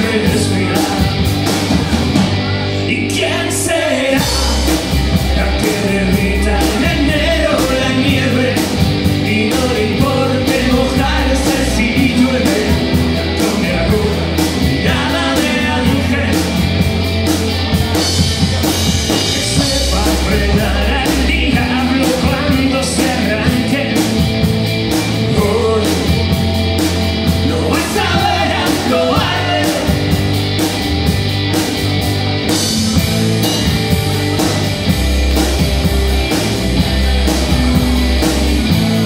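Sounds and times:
drum kit rock rhythm: 0:00.0 - 0:39.0
rock band playing: 0:00.0 - 0:39.0.

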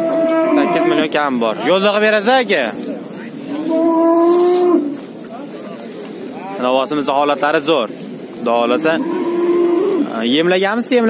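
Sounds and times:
calf mooing: 0:00.0 - 0:01.2, 0:03.5 - 0:05.0, 0:08.7 - 0:10.1.

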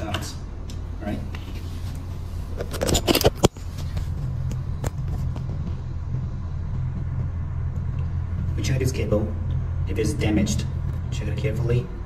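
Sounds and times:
steady low hum: 0:00.0 - 0:12.0
clicks and knocks of handling parts: 0:02.6 - 0:05.5.

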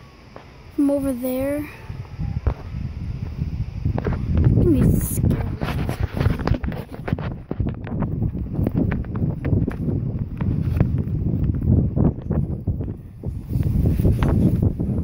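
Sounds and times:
wind rumbling on microphone: 0:00.0 - 0:15.0
running footsteps: 0:05.2 - 0:12.5.

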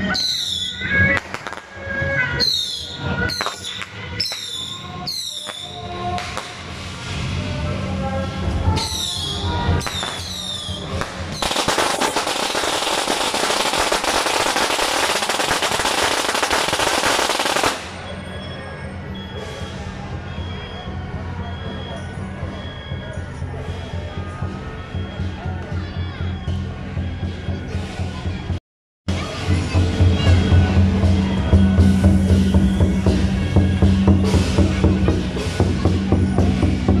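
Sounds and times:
firework bangs with whistles: 0:00.0 - 0:07.6, 0:08.7 - 0:22.8
firecrackers crackling: 0:00.1 - 0:18.2.

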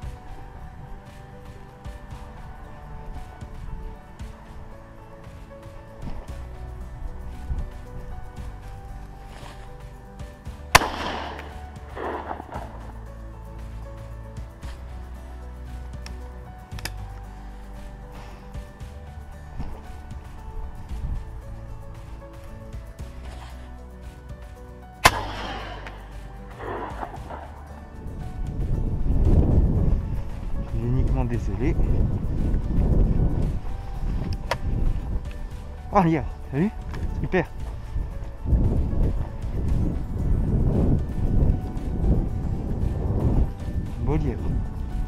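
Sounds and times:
background music: 0:00.0 - 0:45.0
low rumbling noise: 0:00.0 - 0:45.0
shotgun shot crack: 0:10.8 - 0:12.7, 0:25.0 - 0:27.4.

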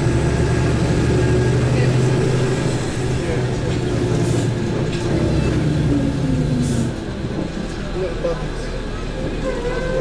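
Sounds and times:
vehicle engine and road noise: 0:00.0 - 0:10.0.

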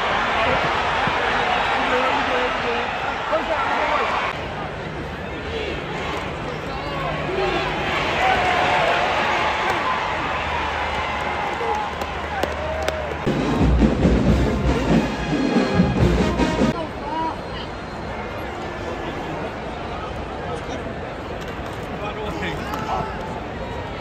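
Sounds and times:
crowd shouting and talking: 0:00.0 - 0:24.0
music playing: 0:13.3 - 0:16.8.

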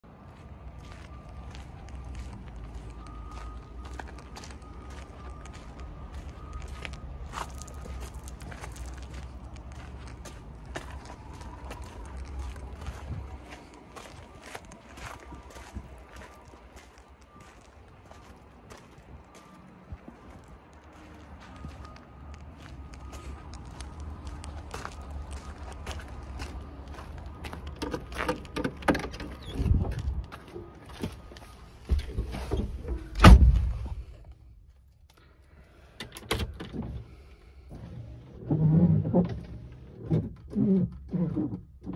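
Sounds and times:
footsteps crunching on gravel: 0:00.3 - 0:28.5
car door opening thumps: 0:31.9 - 0:34.0.

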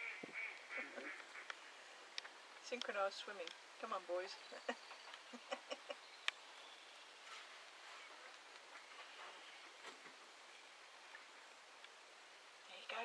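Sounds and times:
duck calls: 0:00.0 - 0:01.5
background hiss: 0:00.0 - 0:13.0.

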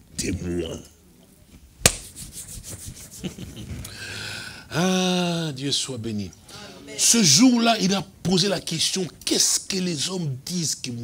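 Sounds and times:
hands rubbing together: 0:01.8 - 0:03.7.

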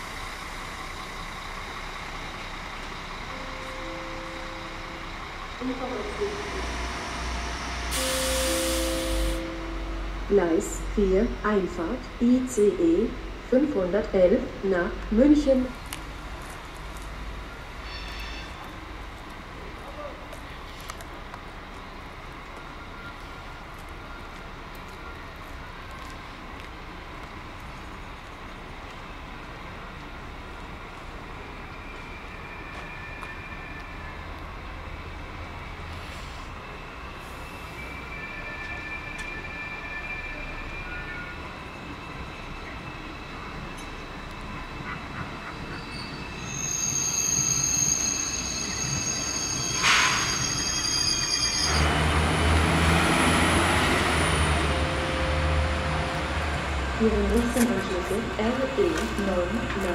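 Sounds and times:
train approaching and braking: 0:00.0 - 0:59.9
shrill brake and wheel squealing: 0:03.3 - 0:10.2, 0:17.5 - 0:19.0, 0:31.4 - 0:34.4, 0:35.6 - 0:56.3.

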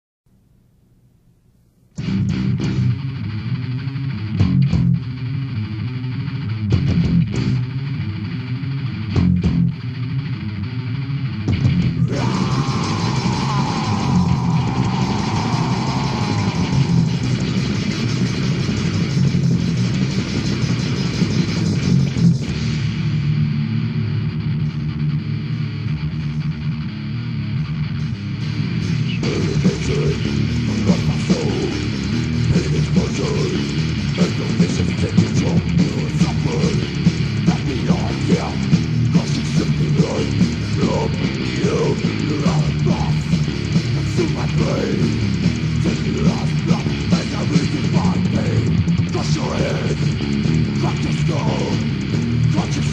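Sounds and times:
bass guitar riffs: 0:00.3 - 0:52.9
distorted electric guitars: 0:00.3 - 0:52.9
high guitar line sliding downward: 0:02.0 - 0:52.9.

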